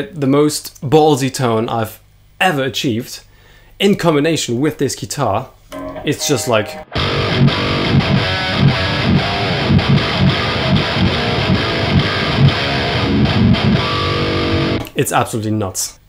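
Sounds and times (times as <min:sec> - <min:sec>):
distorted electric guitar riff: 0:05.7 - 0:14.8.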